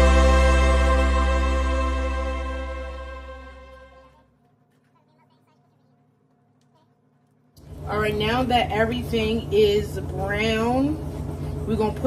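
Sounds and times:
steady low hum: 6.0s - 12.0s.

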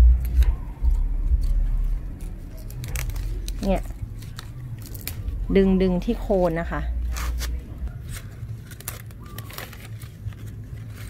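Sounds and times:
cabbage stalks cracking: 0.0s - 11.0s
leaf rustle: 0.3s - 11.0s.

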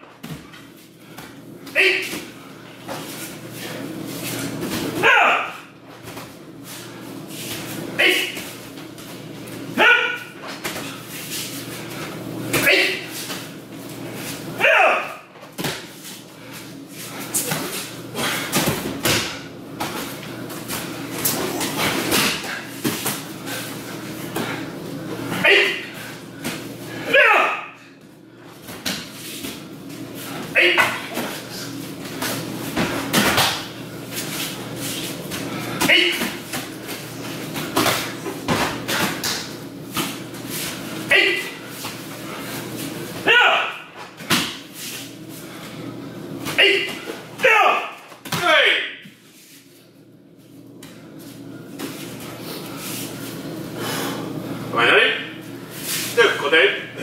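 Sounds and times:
short shouts: 1.7s - 2.1s, 5.0s - 5.6s, 8.0s - 8.4s, 9.8s - 10.4s, 12.6s - 13.1s, 14.6s - 15.3s, 25.3s - 25.9s, 27.0s - 27.8s, 30.5s - 31.1s, 41.1s - 41.6s, 43.2s - 43.9s, 46.6s - 49.0s.

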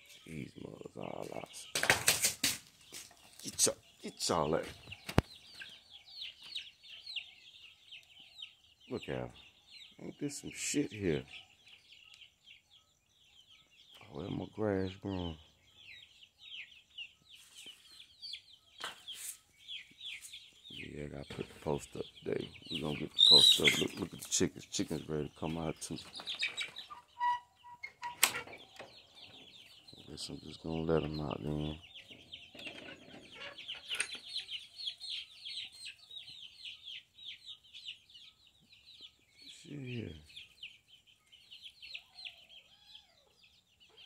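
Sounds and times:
chicks peeping: 0.0s - 44.0s
scuffing noises: 2.1s - 3.7s.

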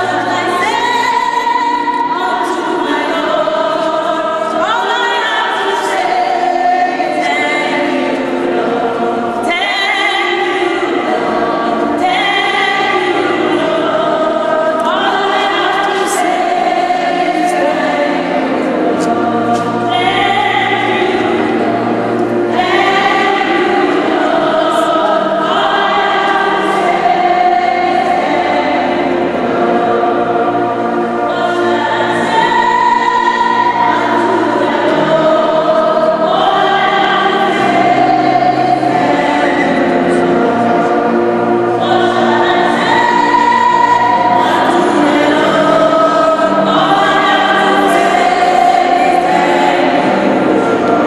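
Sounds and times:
congregation singing a hymn: 0.0s - 51.0s.

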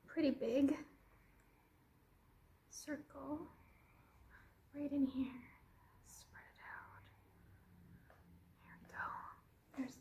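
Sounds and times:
woman whispering faintly: 4.7s - 7.2s, 8.6s - 10.0s.

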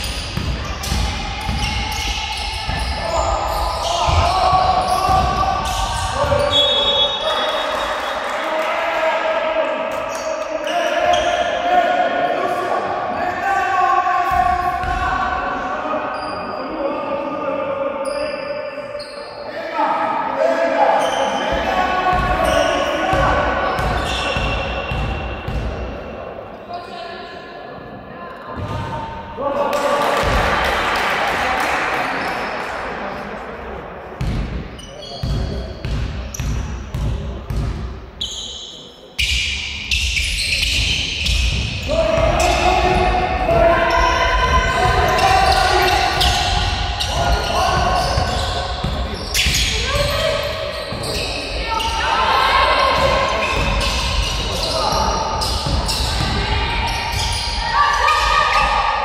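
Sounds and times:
voices calling out in large hall: 0.0s - 59.0s.

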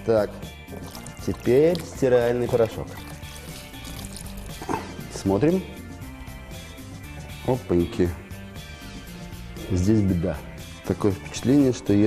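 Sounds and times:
quiet background music: 0.0s - 12.0s
water sloshing and trickling: 0.5s - 5.2s.

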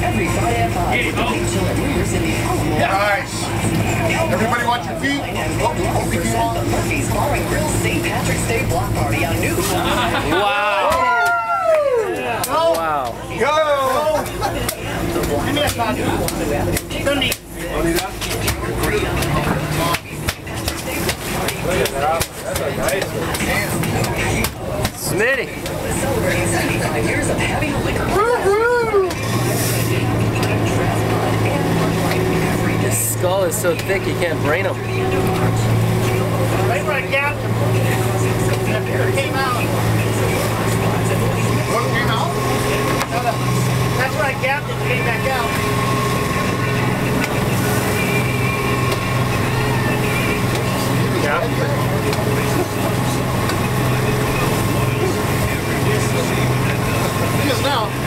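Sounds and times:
boat engine humming: 0.0s - 58.0s
rushing water: 0.0s - 58.0s
wind: 0.0s - 58.0s.

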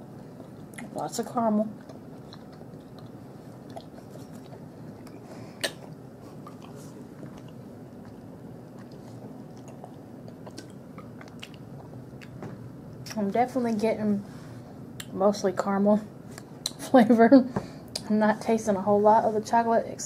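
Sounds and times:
person chewing candy: 1.8s - 12.4s
wet mouth sounds: 1.8s - 12.4s.

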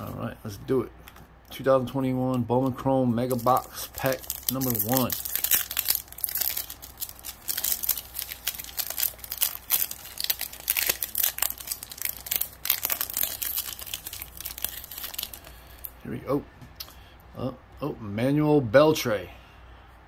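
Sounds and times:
foil wrapper crinkling and tearing: 3.2s - 15.9s.

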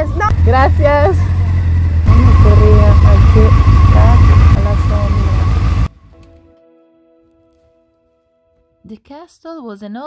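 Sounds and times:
motorcycle engine rumbling: 0.0s - 6.0s.

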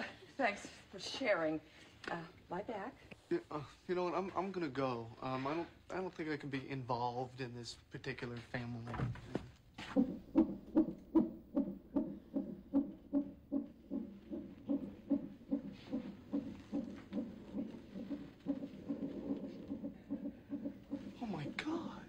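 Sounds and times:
fetal heartbeat pulsing whoosh: 9.8s - 22.0s.

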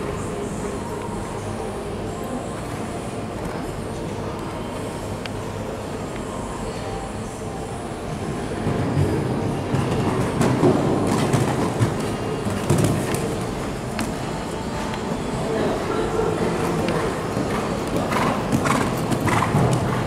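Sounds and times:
rumbling background noise: 0.0s - 20.0s.

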